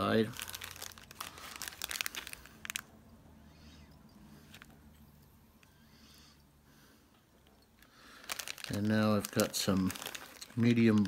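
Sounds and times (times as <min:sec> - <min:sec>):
crinkling and clicking materials: 0:00.0 - 0:02.9, 0:07.4 - 0:11.0.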